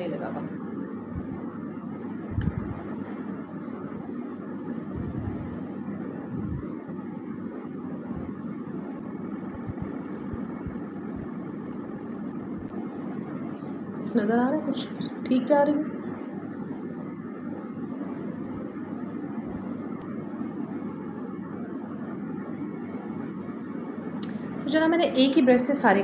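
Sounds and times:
steady background noise: 0:00.0 - 0:26.0.

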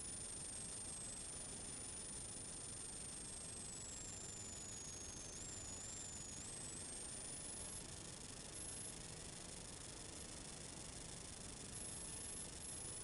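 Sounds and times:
faint steady hiss: 0:00.0 - 0:13.0
high-pitched whine: 0:00.0 - 0:13.0.

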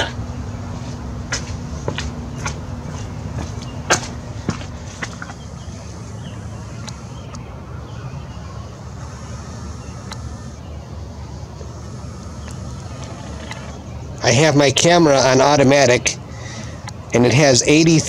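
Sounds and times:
low background rumble: 0:00.0 - 0:17.2
lens motor high whine: 0:04.1 - 0:14.3.

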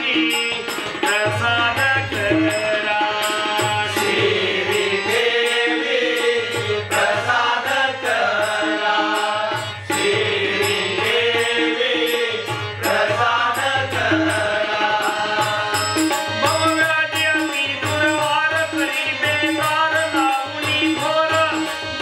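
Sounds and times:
harmonium: 0:00.0 - 0:22.0
men singing devotional song: 0:00.0 - 0:22.0
tabla: 0:00.0 - 0:22.0.

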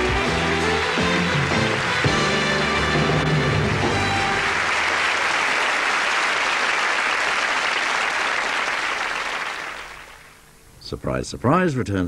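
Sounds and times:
closing music: 0:00.0 - 0:05.9
audience applauding: 0:00.0 - 0:10.4.

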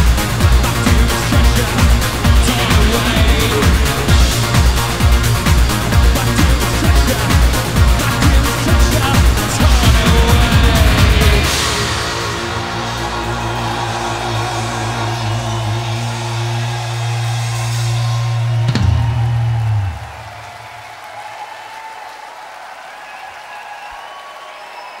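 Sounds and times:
rock band holding chord: 0:00.0 - 0:20.3
drums and cymbals: 0:00.0 - 0:20.4
crowd noise: 0:00.0 - 0:25.0.

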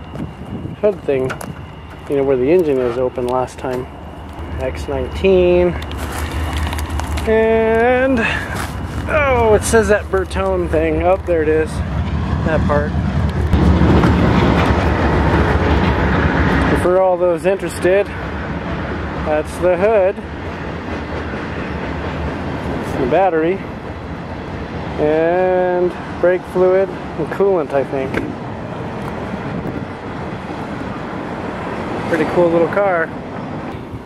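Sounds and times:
rumble of passing traffic: 0:00.0 - 0:34.0
low rumble: 0:04.0 - 0:16.8.

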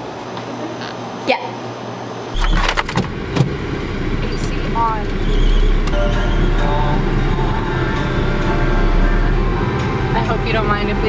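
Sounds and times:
car engine rumbling: 0:02.3 - 0:11.0.

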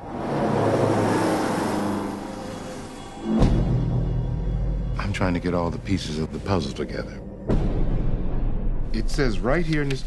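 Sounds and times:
bus passing by: 0:00.0 - 0:03.4.

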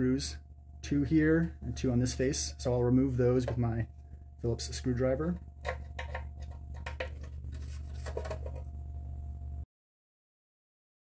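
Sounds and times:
steady low hum: 0:00.0 - 0:09.6
screwdriver clicking and scratching: 0:05.6 - 0:08.7.

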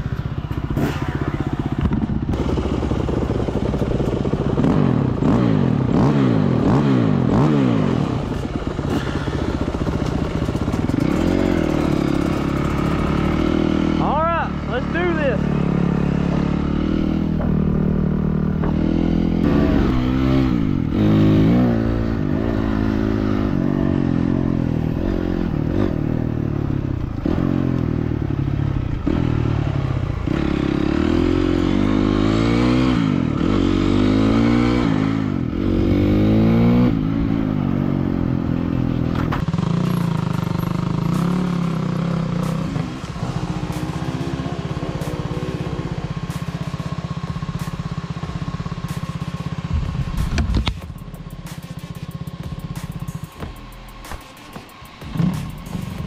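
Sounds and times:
dirt bike engine revving: 0:00.6 - 0:56.0.

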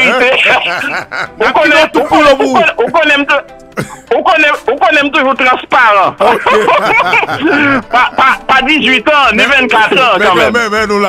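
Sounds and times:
music: 0:00.0 - 0:11.0
man talking: 0:01.4 - 0:06.2, 0:07.4 - 0:11.0.

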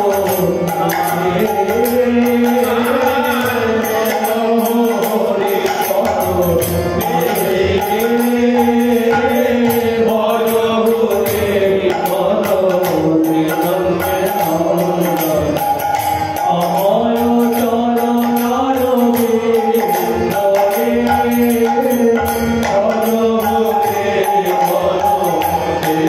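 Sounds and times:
hand cymbals beat: 0:00.0 - 0:26.0
men singing devotional melody: 0:00.0 - 0:26.0
sustained harmonium: 0:00.0 - 0:26.0.

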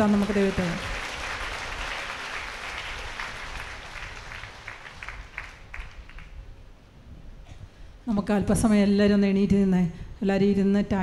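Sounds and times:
audience applause: 0:00.0 - 0:06.4.

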